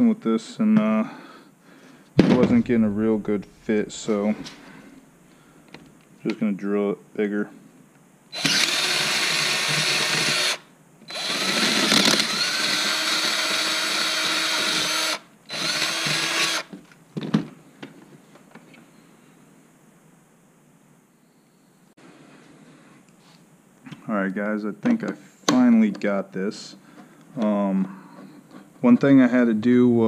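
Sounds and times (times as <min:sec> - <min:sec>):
cordless drill running: 0:08.3 - 0:16.7.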